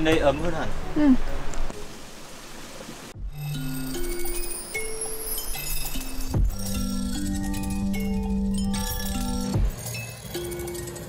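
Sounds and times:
steady outdoor hiss: 0.0s - 11.0s
gentle background music with chimes: 3.3s - 11.0s.

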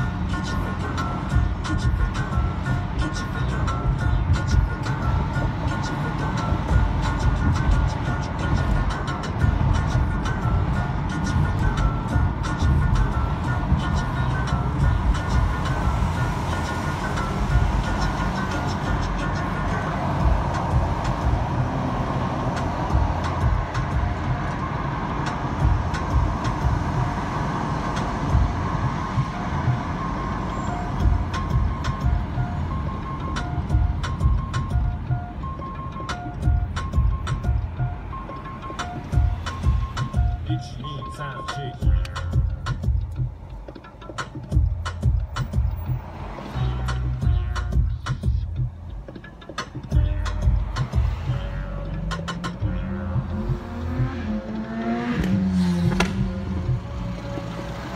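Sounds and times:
music with repeating melodic notes: 0.0s - 57.9s
road and engine rumble in car: 0.0s - 57.9s.

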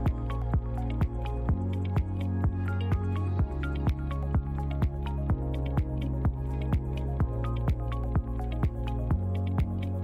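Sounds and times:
kick drum beat: 0.0s - 9.8s
held bass line: 0.0s - 10.0s.

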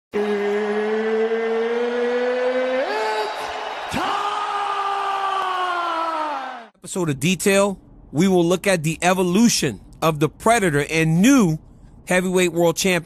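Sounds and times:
rising drone: 0.2s - 2.9s.

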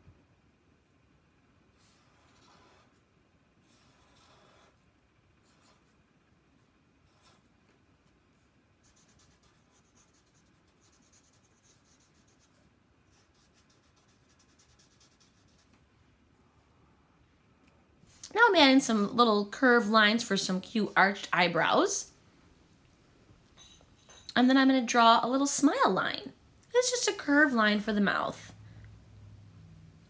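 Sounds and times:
marker scratching on paper: 1.8s - 6.0s, 6.6s - 15.8s.

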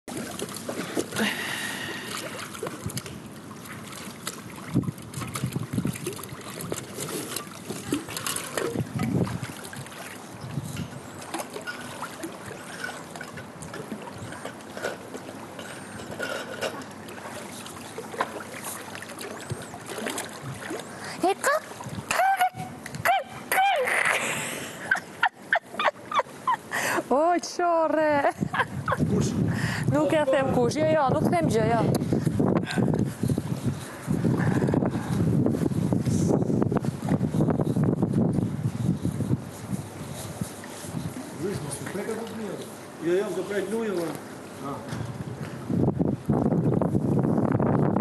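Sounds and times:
pool water sloshing: 0.0s - 47.6s
people whooping in a pool: 22.1s - 24.2s.

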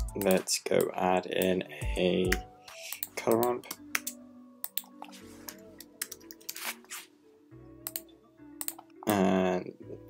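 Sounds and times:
soft background music: 0.0s - 10.0s
computer keyboard clicks: 2.9s - 5.1s, 8.6s - 8.9s.

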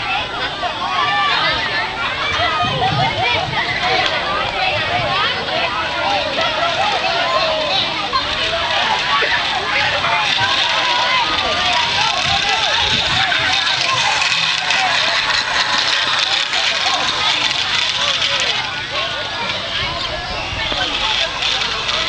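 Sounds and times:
children shouting and chattering: 0.0s - 22.0s.

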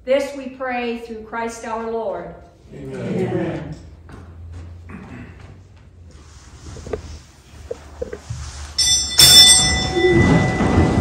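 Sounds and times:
steady rustling: 3.3s - 11.0s
bell ringing: 8.8s - 11.0s.

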